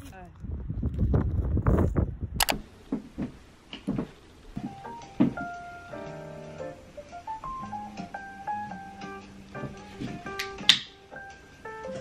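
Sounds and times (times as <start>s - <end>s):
sharp click: 2.4s - 2.6s
outdoor rustling and bumping: 2.6s - 5.6s
piano music: 4.6s - 12.0s.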